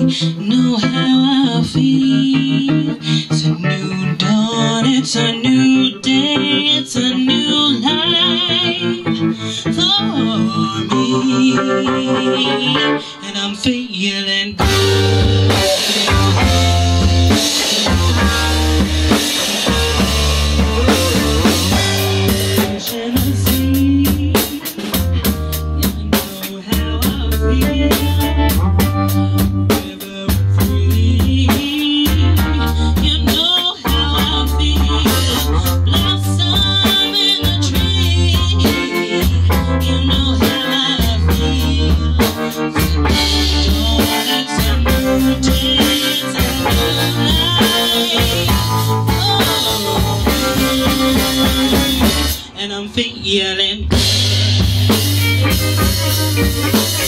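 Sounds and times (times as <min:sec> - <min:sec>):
rock band playing: 0:00.0 - 0:13.7, 0:14.5 - 0:57.0.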